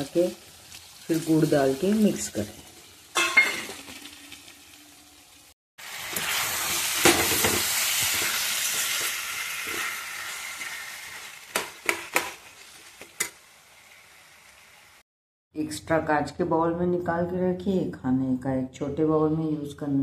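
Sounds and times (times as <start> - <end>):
food sizzling in hot oil: 0.0 - 15.1.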